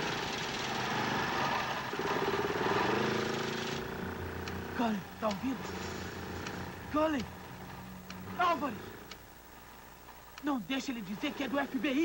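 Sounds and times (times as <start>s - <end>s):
riding lawn mower engine running: 0.0s - 12.0s.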